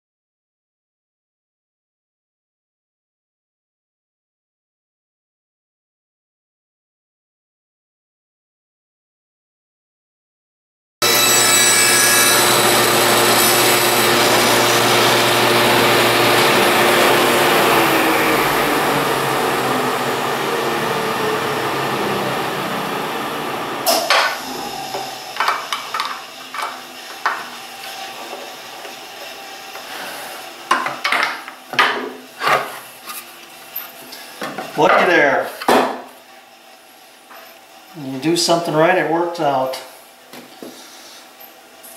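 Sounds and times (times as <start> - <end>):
table saw running: 11.0 - 31.9.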